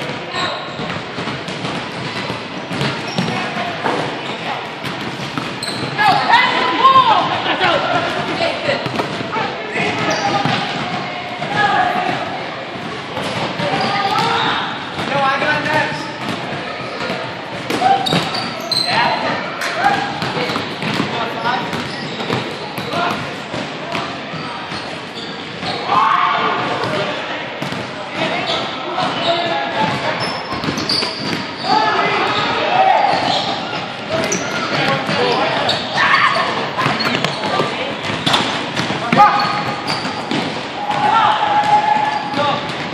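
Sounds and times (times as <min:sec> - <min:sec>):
players shouting and chatter echoing: 0:00.0 - 0:42.9
sneakers squeaking: 0:00.0 - 0:42.9
basketballs bouncing on hardwood: 0:00.8 - 0:03.6, 0:04.8 - 0:06.0, 0:08.1 - 0:09.3, 0:12.8 - 0:18.4, 0:19.8 - 0:24.1, 0:36.8 - 0:42.9.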